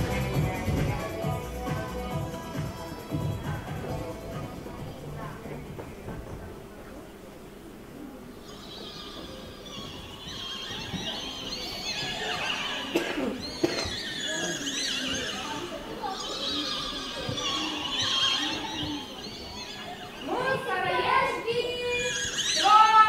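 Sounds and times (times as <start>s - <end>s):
squeaky voices chattering: 0.0s - 23.0s.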